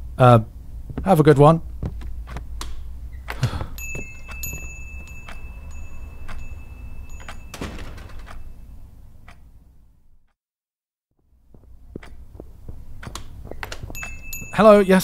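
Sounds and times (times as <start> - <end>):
low steady hum: 0.0 - 10.2
footstep clicks: 0.8 - 9.5, 11.4 - 14.9
high electronic chime: 3.8 - 8.6, 14.0 - 14.9
door: 7.2 - 8.6.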